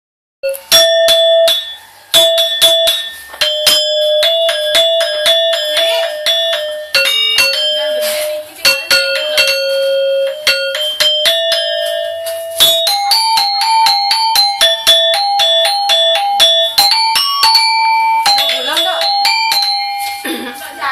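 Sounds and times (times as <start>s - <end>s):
metallophone keys ringing: 0.4s - 20.9s.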